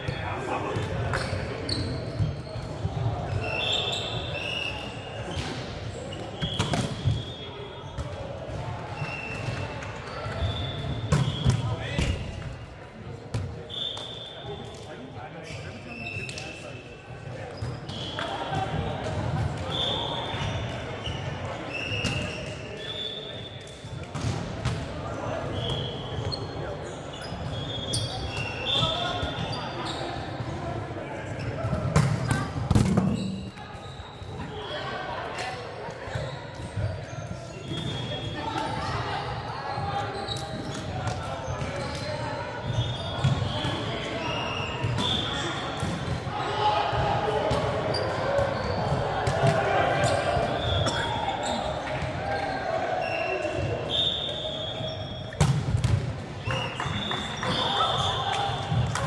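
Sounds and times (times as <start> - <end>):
players' voices echoing: 0.0 - 21.7, 22.6 - 54.9
sneakers squeaking on court: 1.1 - 8.1, 25.1 - 30.5, 39.7 - 46.2, 46.9 - 58.8.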